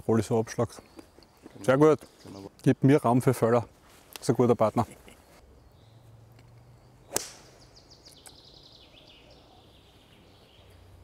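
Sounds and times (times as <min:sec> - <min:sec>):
golf club striking ball: 0:07.1 - 0:07.6.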